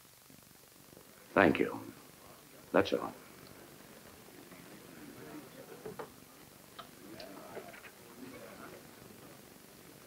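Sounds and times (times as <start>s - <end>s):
faint murmur: 0.8s - 10.0s.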